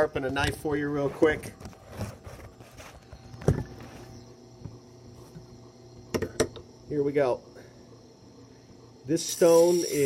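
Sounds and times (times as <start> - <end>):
sharpening machine motor hum: 9.2 - 10.0.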